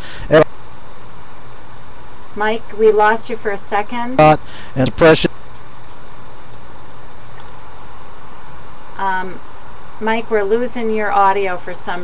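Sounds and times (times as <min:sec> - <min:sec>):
faint low hum: 0:00.0 - 0:12.0
steady hiss: 0:00.0 - 0:12.0.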